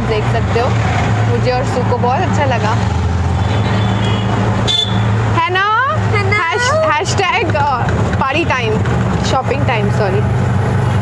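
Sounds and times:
low engine hum: 0.0 - 11.0
road noise: 0.0 - 11.0.

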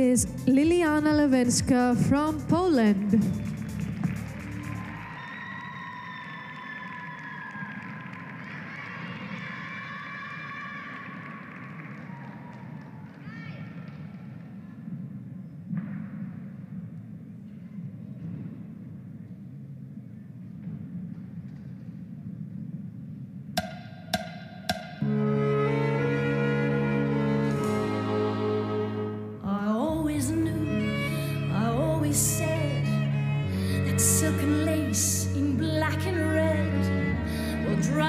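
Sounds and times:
background music: 0.0 - 5.6, 23.6 - 38.0
low murmur of hall: 0.0 - 23.6.

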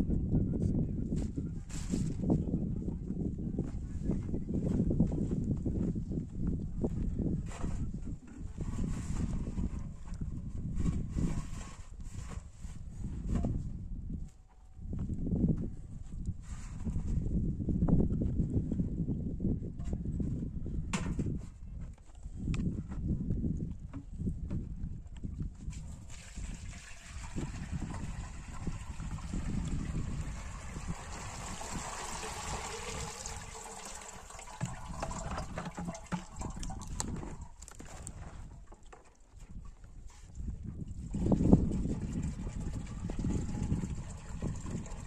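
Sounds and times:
buttermilk pouring into strainer: 26.0 - 37.3, 41.2 - 45.0.

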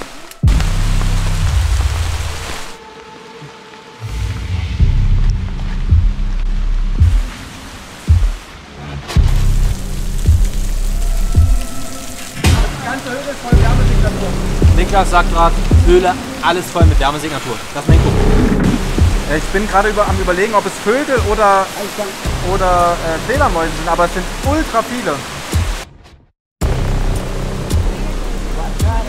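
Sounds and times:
background music with deep bass: 0.0 - 24.9, 26.6 - 29.0
rain hiss: 0.0 - 25.8, 26.6 - 29.0
sharp low hits: 17.9 - 20.3.

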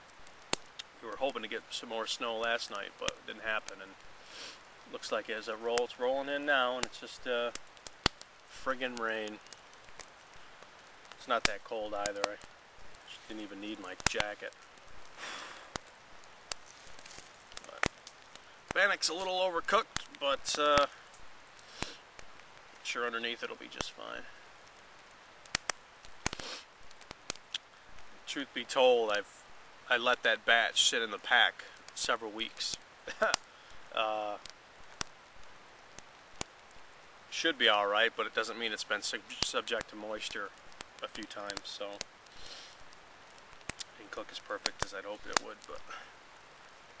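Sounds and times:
campfire crackling: 0.0 - 47.0
fire pops: 0.0 - 47.0
light rain hiss: 0.0 - 47.0
person sniffing: 4.2 - 4.6, 15.2 - 15.7, 21.7 - 22.0, 26.4 - 26.7, 42.3 - 42.8.

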